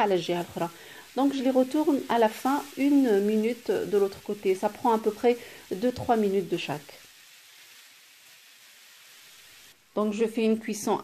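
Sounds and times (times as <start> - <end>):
steaks sizzling in a grill pan: 0.0 - 11.0.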